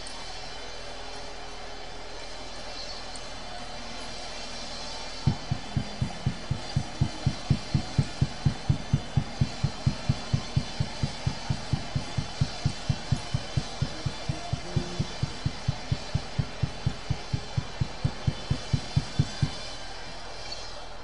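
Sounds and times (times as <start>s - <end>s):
steady bass drum beat: 5.2s - 19.6s.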